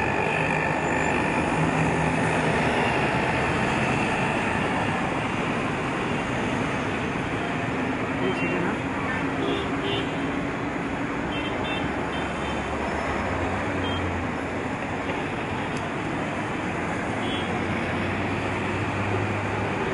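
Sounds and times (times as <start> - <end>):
low engine drone: 0.0 - 6.0
city road traffic: 0.0 - 19.9.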